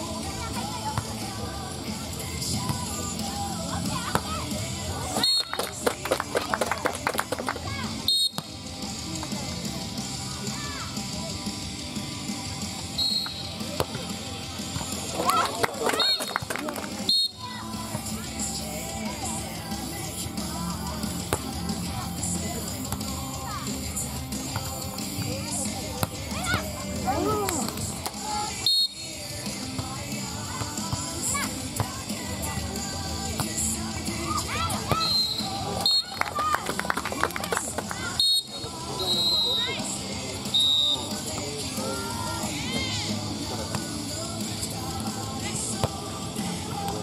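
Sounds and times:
crowd shouting and cheering: 0.0s - 11.8s, 12.4s - 47.0s
music: 0.0s - 47.0s
quick claps: 5.2s - 7.6s, 15.2s - 17.1s, 36.0s - 38.0s
referee's whistle blast: 8.0s - 8.4s, 13.0s - 13.6s, 17.1s - 17.4s, 28.6s - 29.0s, 35.0s - 36.2s, 38.2s - 39.7s, 40.5s - 41.1s
people shouting: 26.2s - 28.6s, 34.2s - 36.6s, 41.8s - 43.2s.

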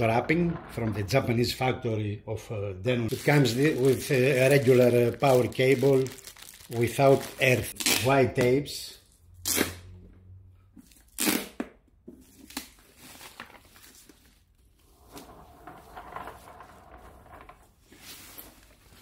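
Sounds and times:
foam packing wrap rustling: 3.1s - 8.2s.

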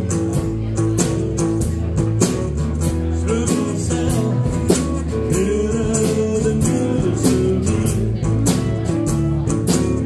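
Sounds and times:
acoustic and electric guitars: 0.0s - 10.0s
drums keeping a steady beat: 0.0s - 10.0s.

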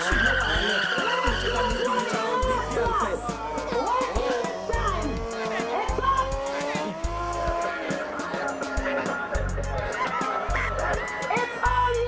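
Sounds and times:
motorcycle engine revving: 0.0s - 12.0s
music with heavy bass beat: 0.0s - 12.0s.

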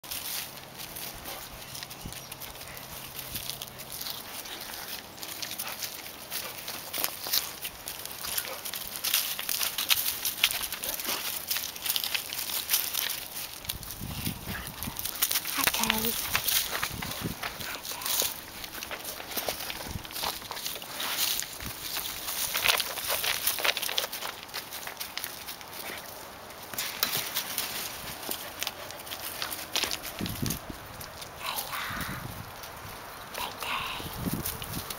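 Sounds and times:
dry leaves crunching under paws: 0.0s - 34.9s.

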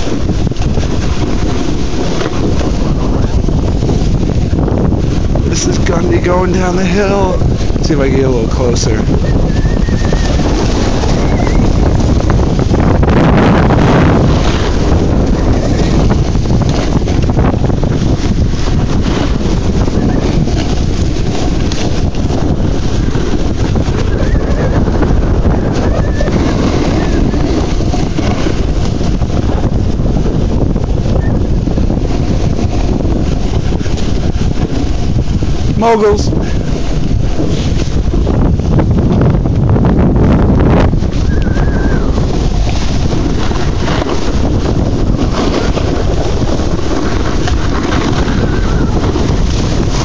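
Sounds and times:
scraping on packed snow: 0.0s - 39.8s, 40.4s - 50.0s
wind buffeting microphone: 0.0s - 50.0s.

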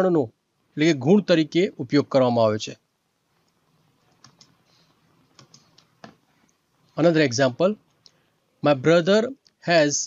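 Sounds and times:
faint keyboard typing: 3.3s - 6.9s.

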